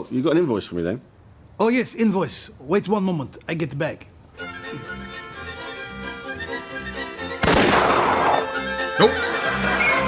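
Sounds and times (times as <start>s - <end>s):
string music: 4.3s - 10.0s
starting pistol shot: 7.4s - 8.5s.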